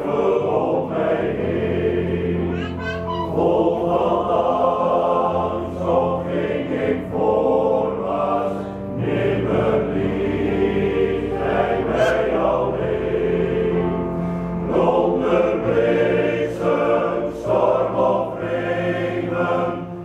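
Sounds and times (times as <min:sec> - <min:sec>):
men's choir singing: 0:00.0 - 0:02.6, 0:03.2 - 0:20.0.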